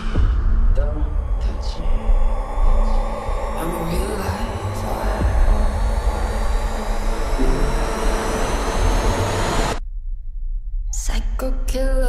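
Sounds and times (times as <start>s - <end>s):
trailer music: 0.0s - 10.9s
low rumble: 0.0s - 12.0s
high whine: 1.4s - 9.8s
small plane engine drone: 4.6s - 9.8s.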